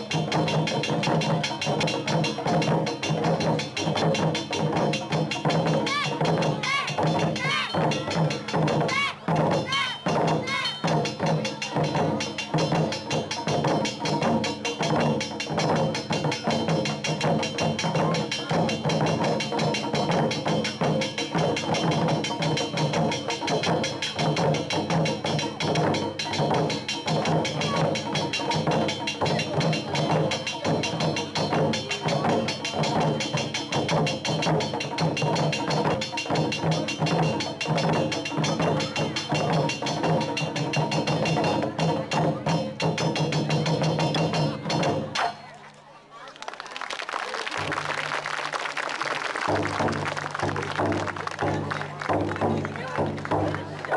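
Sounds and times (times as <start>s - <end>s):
taiko drums playing: 0.0s - 45.5s, 49.5s - 53.9s.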